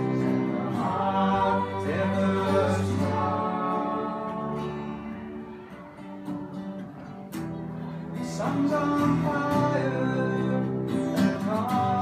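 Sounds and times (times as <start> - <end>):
cello: 0.0 - 12.0
strummed acoustic guitars: 0.0 - 12.0
violin: 0.0 - 12.0.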